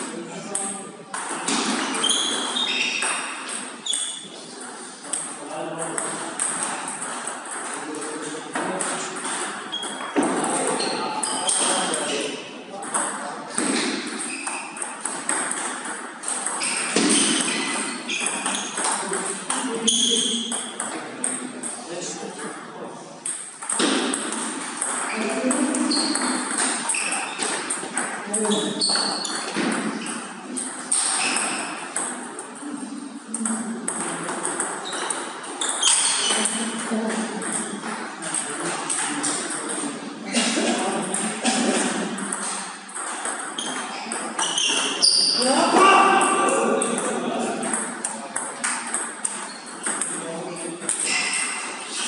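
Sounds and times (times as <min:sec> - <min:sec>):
table tennis balls clicking: 0:05.0 - 0:12.2, 0:12.8 - 0:21.8, 0:23.2 - 0:32.6, 0:33.3 - 0:40.0, 0:41.0 - 0:45.4, 0:46.2 - 0:52.0.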